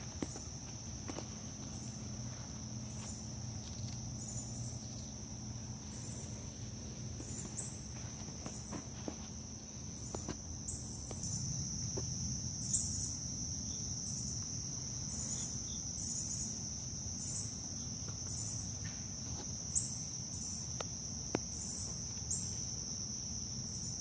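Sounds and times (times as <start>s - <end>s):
higher pulsing insect call: 0.0s - 24.0s
insects trilling: 0.0s - 24.0s.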